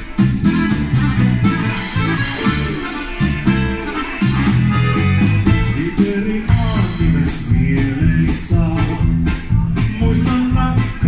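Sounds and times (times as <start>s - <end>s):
accordion: 0.0s - 11.0s
drums: 0.0s - 11.0s
guitars: 0.0s - 11.0s
keyboard: 0.0s - 11.0s
steady bass line: 0.0s - 11.0s.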